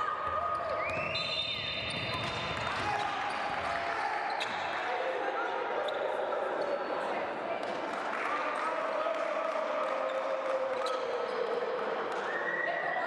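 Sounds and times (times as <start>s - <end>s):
players' voices and shouts: 0.0s - 13.0s.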